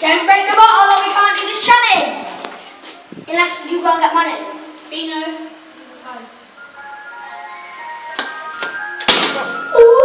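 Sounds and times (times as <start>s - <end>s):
ice cream van chime tune: 6.6s - 9.9s.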